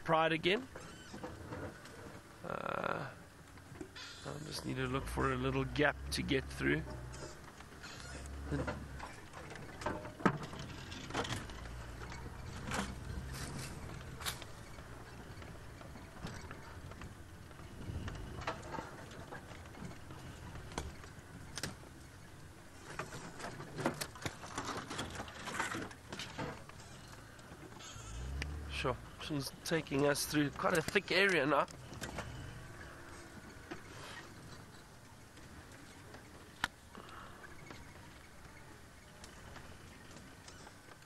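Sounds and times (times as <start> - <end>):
low engine hum: 4.4 - 23.4, 26.7 - 40.4.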